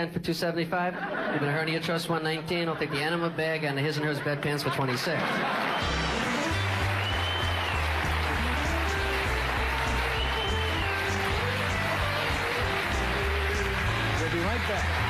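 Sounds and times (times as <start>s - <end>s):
audience applause: 5.3s - 15.0s
band playing up-tempo tune: 5.8s - 15.0s.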